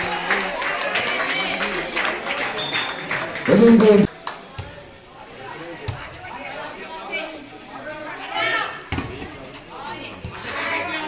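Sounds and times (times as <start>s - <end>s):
people calling out and chattering: 0.0s - 11.0s.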